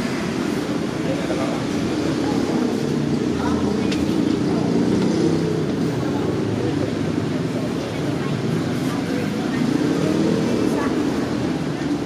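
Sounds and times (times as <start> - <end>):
passing traffic: 0.0 - 12.0
people chattering: 0.0 - 12.0.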